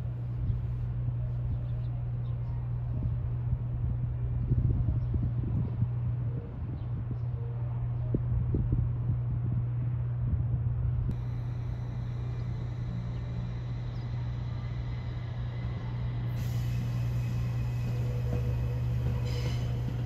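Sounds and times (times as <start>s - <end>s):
wind rumble on microphone: 0.0s - 16.5s
electric train humming: 0.0s - 20.0s.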